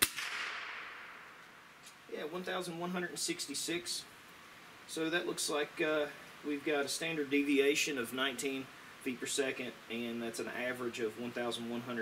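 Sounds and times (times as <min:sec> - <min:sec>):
air rifle shot: 0:00.0 - 0:01.4.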